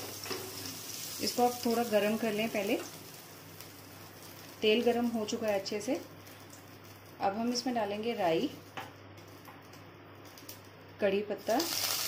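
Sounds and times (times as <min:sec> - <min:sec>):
mustard seeds crackling in oil: 0:00.0 - 0:12.0.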